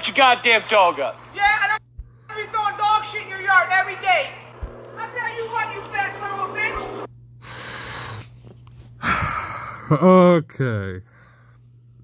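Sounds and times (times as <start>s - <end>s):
person talking: 0.0s - 7.1s
steady low hum: 0.0s - 12.0s.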